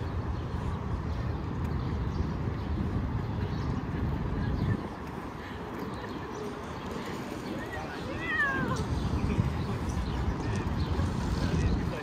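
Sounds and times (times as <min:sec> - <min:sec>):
low city rumble: 0:00.0 - 0:12.0.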